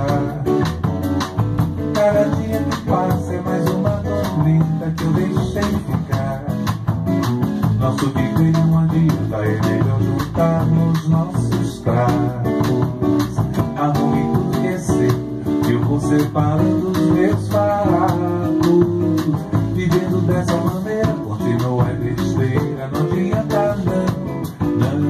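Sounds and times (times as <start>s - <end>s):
acoustic guitar: 0.0s - 25.0s
light drums: 0.0s - 25.0s
upright double bass: 0.0s - 25.0s.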